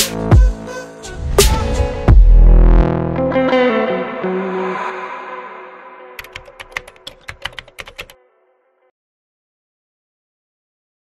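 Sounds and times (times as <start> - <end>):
song: 0.1 - 7.2
keystroke clicks: 6.2 - 8.1.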